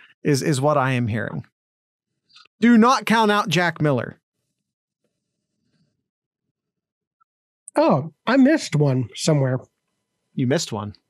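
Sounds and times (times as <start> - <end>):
man's voice: 0.2 - 1.4, 2.6 - 4.1, 7.7 - 9.6, 10.4 - 10.9.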